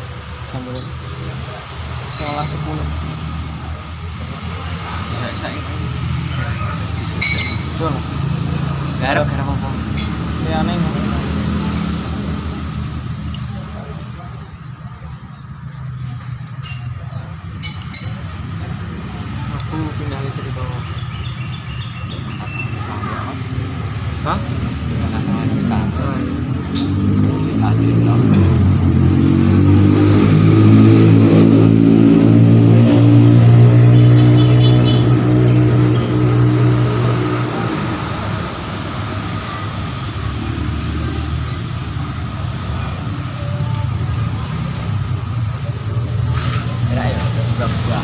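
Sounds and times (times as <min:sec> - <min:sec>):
vehicle engine running: 0:00.0 - 0:48.0
workshop hum: 0:00.0 - 0:48.0.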